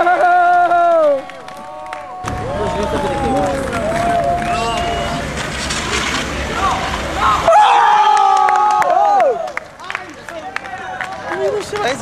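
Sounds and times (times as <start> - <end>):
young men shouting: 0.3 - 5.3, 6.5 - 9.5.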